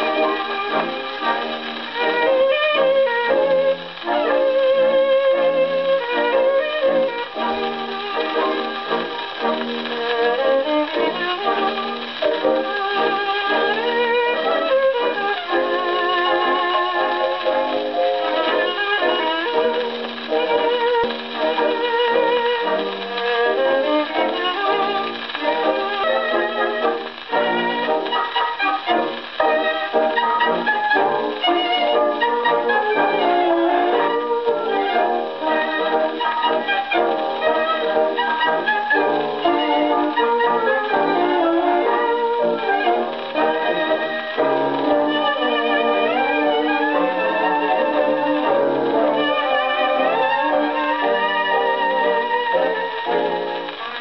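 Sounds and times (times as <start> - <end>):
brass and woodwind: 0.0 - 54.0
tango dance orchestra on gramophone: 0.0 - 54.0
violins with vibrato: 0.0 - 54.0.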